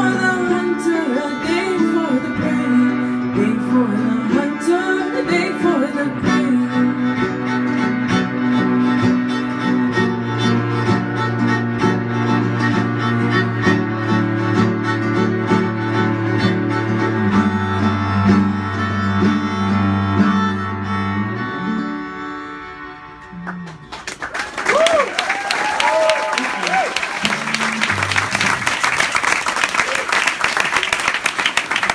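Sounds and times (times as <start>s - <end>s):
cello and viola bowed notes: 0.0s - 24.0s, 27.2s - 28.8s
audience applause: 23.4s - 31.9s
whoops and cheers: 24.4s - 28.1s, 29.8s - 30.4s.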